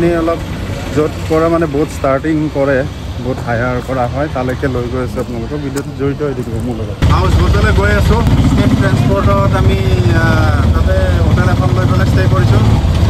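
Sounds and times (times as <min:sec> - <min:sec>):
man talking: 0:00.0 - 0:12.9
auto-rickshaw engine rumbling: 0:00.0 - 0:13.0.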